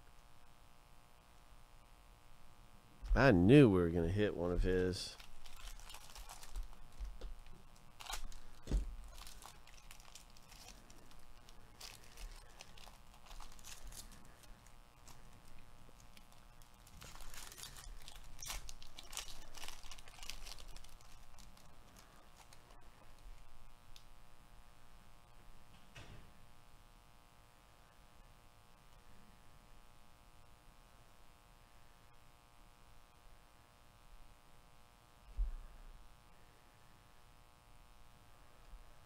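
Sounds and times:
foil wrapper crinkling: 0:05.0 - 0:24.1.

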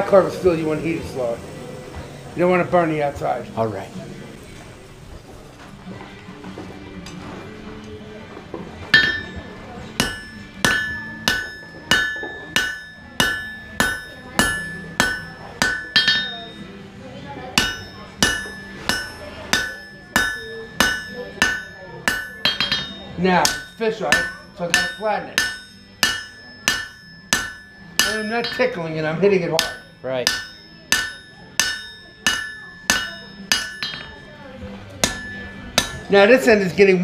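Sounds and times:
hammer striking metal on anvil: 0:08.9 - 0:16.7, 0:17.6 - 0:34.3, 0:35.0 - 0:36.2.

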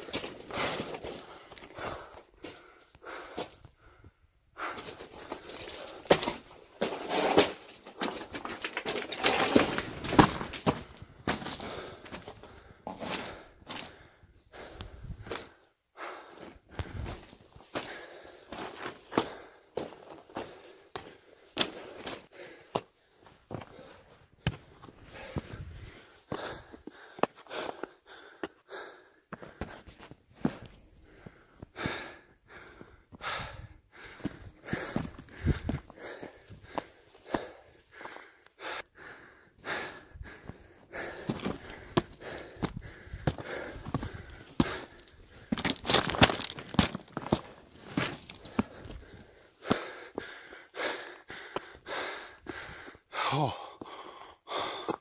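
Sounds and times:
footsteps on rock and snow: 0:00.0 - 0:03.7, 0:04.6 - 0:14.2, 0:16.7 - 0:28.6, 0:29.3 - 0:32.1, 0:34.1 - 0:38.3, 0:40.2 - 0:50.6
person breathing heavily: 0:00.0 - 0:06.3, 0:10.8 - 0:55.0.

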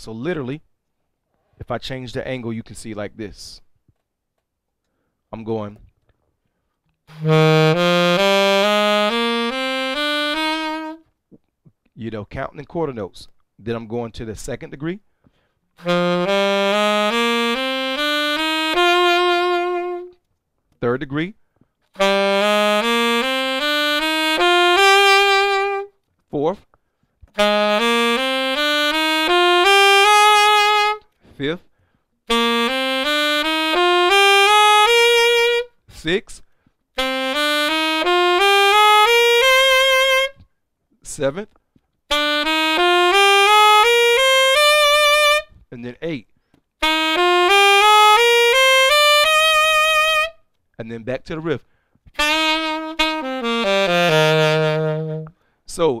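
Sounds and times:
saxophone playing a scale: 0:07.1 - 0:11.1, 0:15.8 - 0:20.3, 0:21.9 - 0:26.0, 0:27.3 - 0:31.2, 0:32.3 - 0:35.8, 0:37.0 - 0:40.4, 0:42.1 - 0:45.6, 0:46.8 - 0:50.5, 0:52.1 - 0:55.5.

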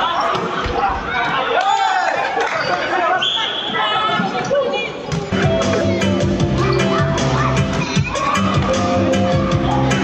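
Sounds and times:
players calling and chattering: 0:00.0 - 0:10.0.

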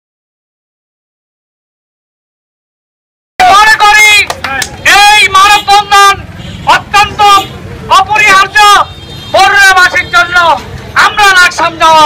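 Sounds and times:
man shouting through megaphone: 0:03.4 - 0:12.0.

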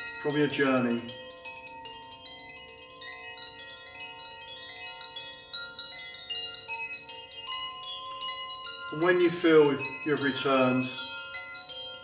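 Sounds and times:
chimes ringing: 0:00.0 - 0:12.0.

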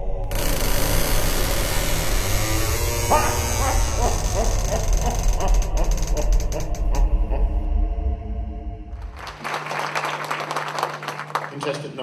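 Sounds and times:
rising voice-like calls: 0:02.9 - 0:07.7.

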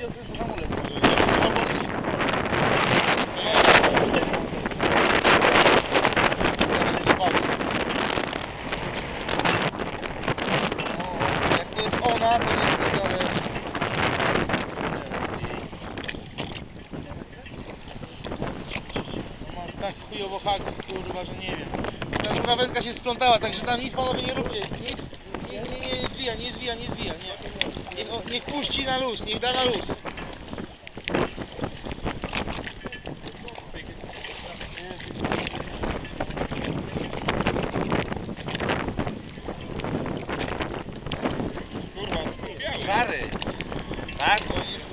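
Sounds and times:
choppy sea water splashing: 0:00.0 - 0:44.9
wind buffeting microphone: 0:00.0 - 0:44.9.

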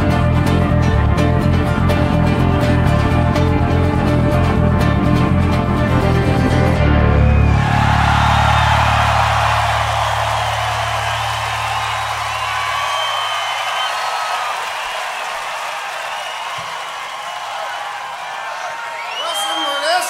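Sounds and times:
rock band final chord: 0:00.0 - 0:13.0
crowd cheering and whistling: 0:06.8 - 0:20.0.

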